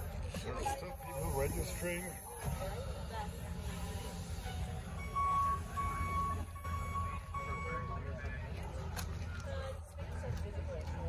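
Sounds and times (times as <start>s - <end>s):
bus low steady hum: 0.0s - 11.0s
bus door warning beeps: 4.8s - 8.2s.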